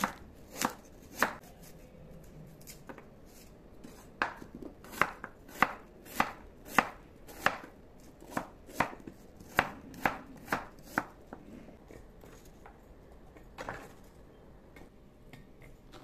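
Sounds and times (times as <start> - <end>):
knife chopping on wooden board: 0.0 - 1.4, 3.8 - 11.2.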